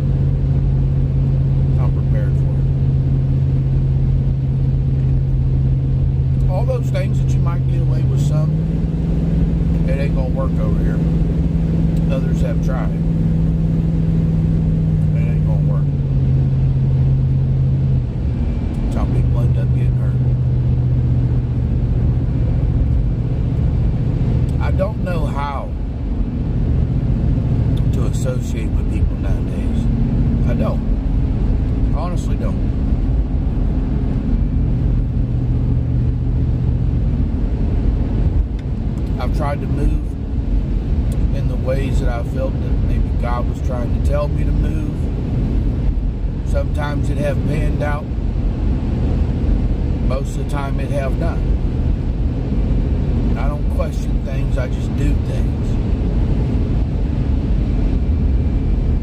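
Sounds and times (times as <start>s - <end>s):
car engine droning: 0.0s - 59.0s
road rumble: 0.0s - 59.0s.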